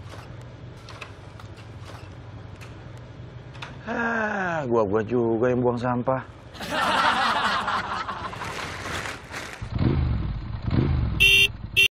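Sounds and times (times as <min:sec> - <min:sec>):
motor scooter engine revving: 0:09.6 - 0:11.9
scooter horn beeps: 0:11.2 - 0:11.9.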